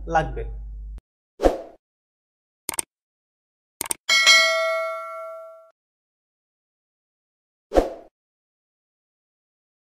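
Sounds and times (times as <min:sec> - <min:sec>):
double mouse click: 0:02.7 - 0:02.9
notification bell chime: 0:04.1 - 0:05.7.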